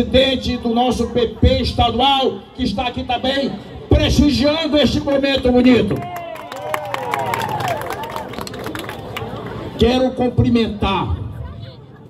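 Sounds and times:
crowd clapping: 0:05.1 - 0:09.8
crowd cheering: 0:05.9 - 0:09.8.

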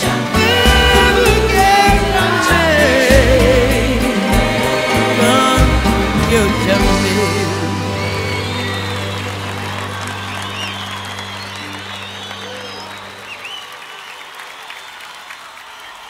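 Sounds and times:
audience applauding: 0:00.0 - 0:16.0
band holding low note: 0:00.4 - 0:13.6
high whistles and calls: 0:07.2 - 0:16.0.

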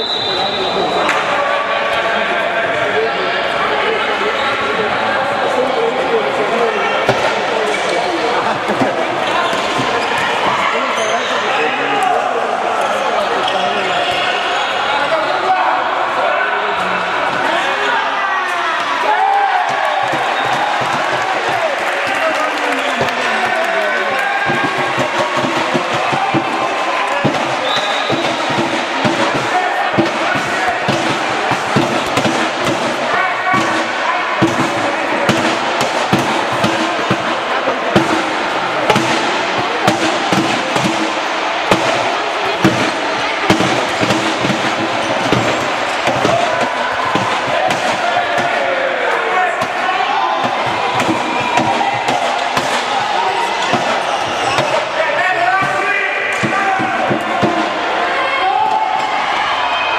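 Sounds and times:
murmur of voices: 0:00.0 - 0:59.9
handball bouncing on court floor: 0:07.0 - 0:11.1, 0:19.6 - 0:23.3, 0:24.1 - 0:48.7, 0:49.6 - 0:55.0, 0:55.6 - 0:57.8.

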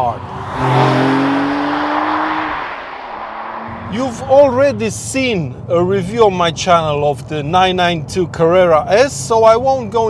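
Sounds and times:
sports car engine pulling away: 0:00.0 - 0:04.6.

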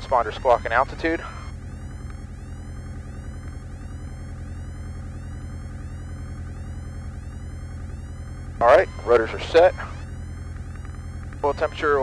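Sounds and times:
aircraft engine low hum: 0:00.0 - 0:12.0.

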